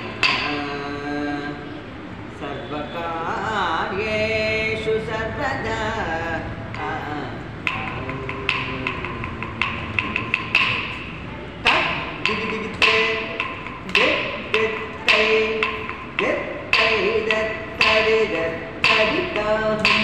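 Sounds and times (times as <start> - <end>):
sharp ringing percussion strokes: 0.0 - 1.8, 2.6 - 20.0
person reciting rhythmically: 0.0 - 20.0.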